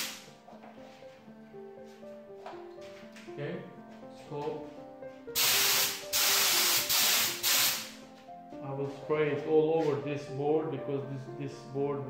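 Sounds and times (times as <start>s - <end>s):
spray gun hissing: 0.0s - 0.3s, 5.4s - 8.0s.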